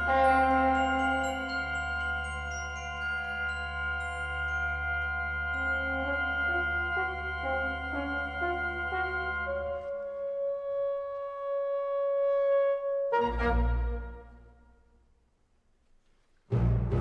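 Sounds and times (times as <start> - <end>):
glockenspiel tones: 0.0 - 8.8
tenor helicon melody: 0.0 - 14.4.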